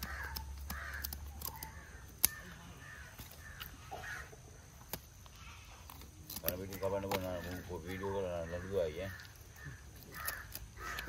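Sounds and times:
crow cawing: 0:00.0 - 0:04.7, 0:06.7 - 0:11.0.

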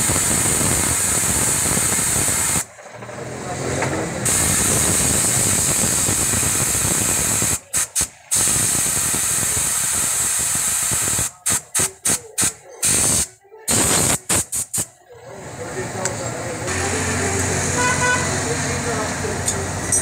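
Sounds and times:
hose nozzle spray hissing: 0:00.0 - 0:02.7, 0:04.3 - 0:14.9.

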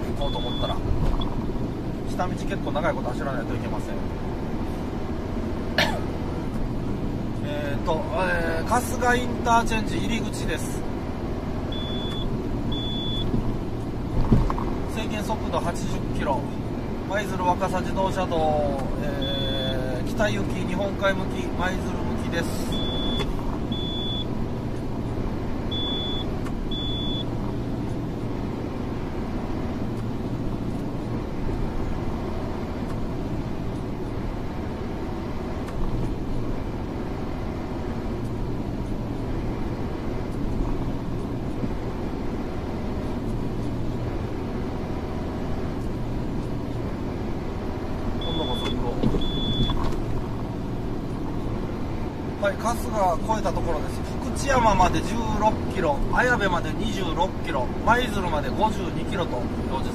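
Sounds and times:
truck engine and road noise: 0:00.0 - 0:59.9
short high beeps: 0:00.2 - 0:00.8, 0:11.8 - 0:13.3, 0:19.2 - 0:19.8, 0:22.8 - 0:24.3, 0:48.2 - 0:49.8.

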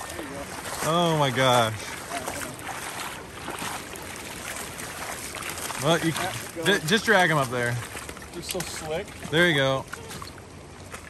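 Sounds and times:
water sloshing around wading boots: 0:00.0 - 0:11.0.

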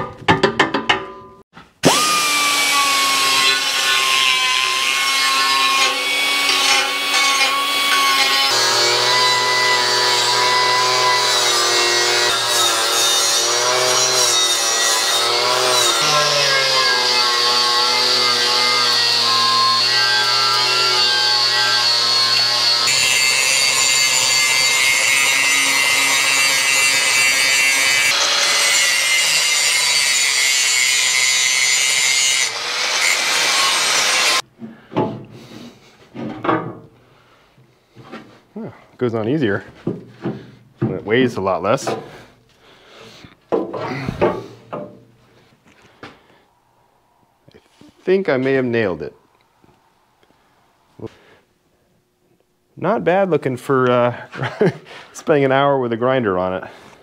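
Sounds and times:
electric grinder grinding steel: 0:01.8 - 0:34.4.

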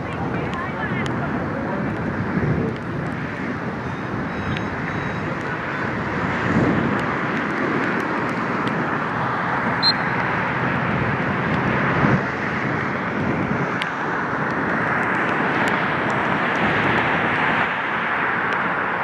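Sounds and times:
rushing background noise: 0:00.0 - 0:19.0
brief high chirp: 0:09.8 - 0:10.1.

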